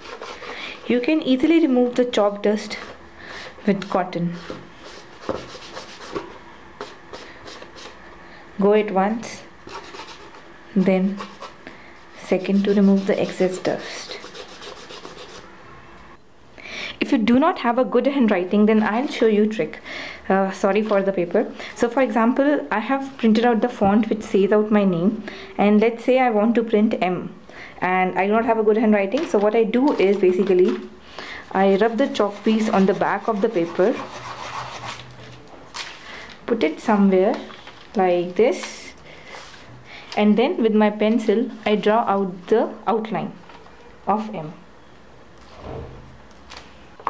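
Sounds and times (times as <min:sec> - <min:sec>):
cotton rubbing on chalkboard: 0:00.0 - 0:00.9, 0:03.8 - 0:08.0, 0:09.7 - 0:15.5, 0:31.7 - 0:35.1.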